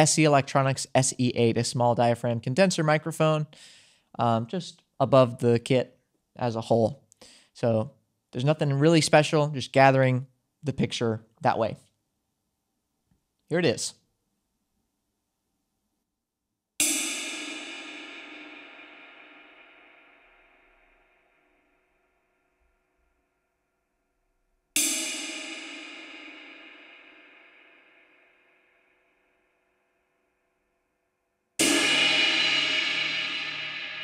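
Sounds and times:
ride cymbal struck and ringing: 31.6 - 34.0.

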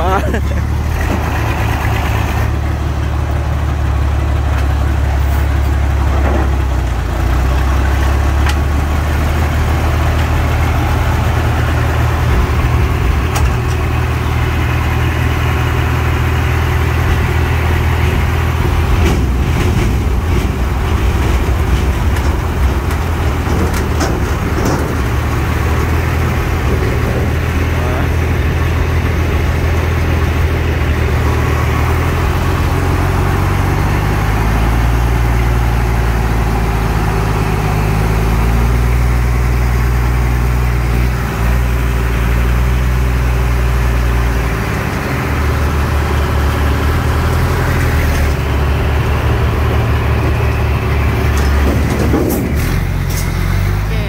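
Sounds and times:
diesel lorry engines droning: 0.0 - 54.0.

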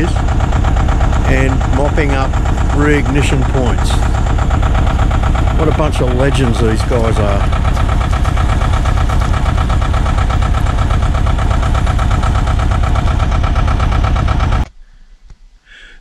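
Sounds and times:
vehicle engine idling: 0.0 - 14.8.

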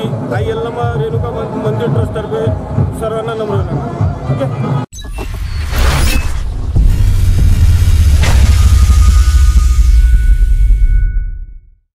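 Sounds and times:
whoosh: 5.1 - 11.8
deep bass rumble: 6.4 - 11.8.

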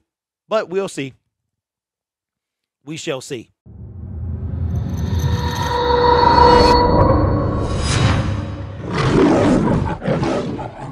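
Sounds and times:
sharp hit: 3.7 - 9.1
lion roaring: 8.8 - 10.9.

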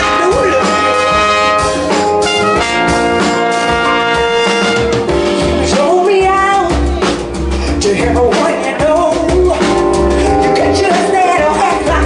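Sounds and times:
trumpet and trombone playing: 0.0 - 5.6
bass: 0.0 - 12.0
drum kit: 0.0 - 12.0.

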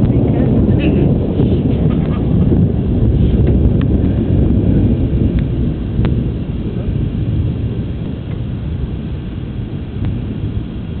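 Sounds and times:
thunder rumbling: 0.0 - 11.0.

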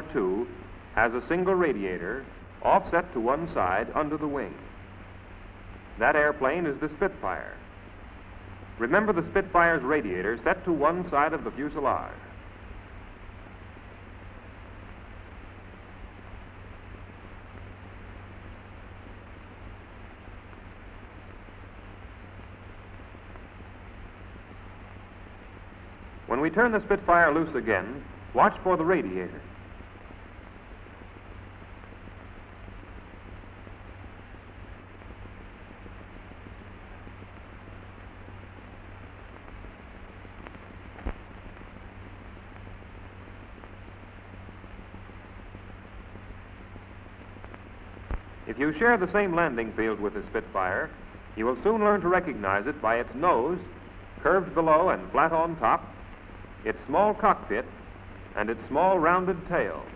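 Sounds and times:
film soundtrack hiss and hum: 0.0 - 59.9.

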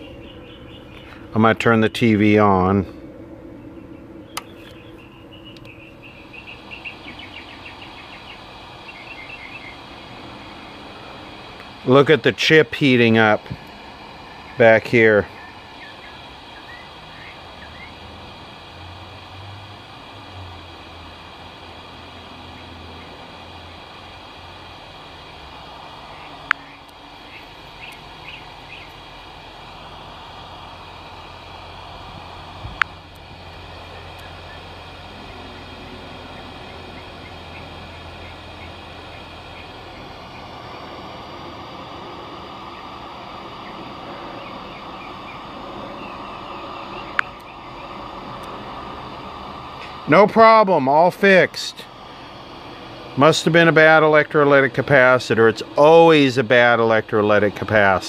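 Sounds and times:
steady low hum: 0.0 - 58.0
faint high chirps: 3.6 - 9.9
sharp clicks: 4.3 - 4.8, 5.5 - 5.8, 26.2 - 29.1, 32.0 - 33.3, 33.9 - 34.6, 36.4 - 51.0.

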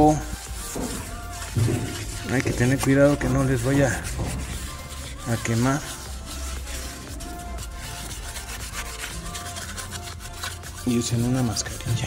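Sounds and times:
brush scrubbing wheel rim: 0.0 - 12.0
faint background music: 0.0 - 12.0.

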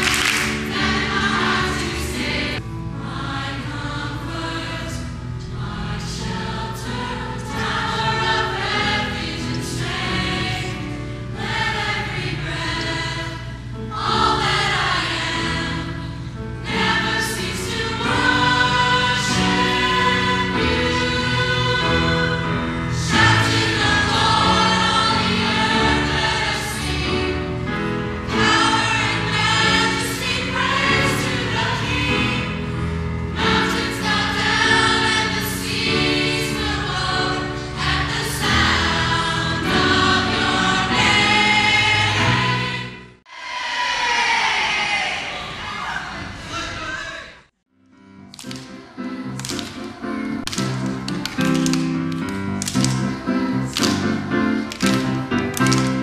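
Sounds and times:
youth choir singing: 0.0 - 47.4.

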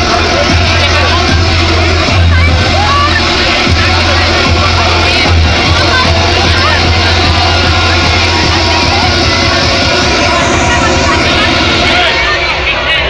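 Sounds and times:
deep bass note: 0.0 - 12.5
crowd shouting: 0.0 - 13.0
loud electronic dance music: 0.0 - 13.0.

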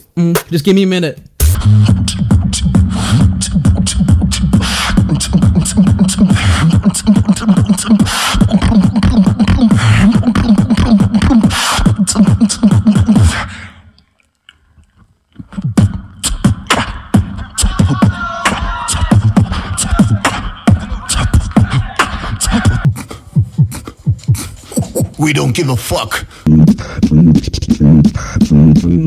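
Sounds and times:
person beatboxing into a microphone: 1.4 - 13.6, 15.4 - 29.0.

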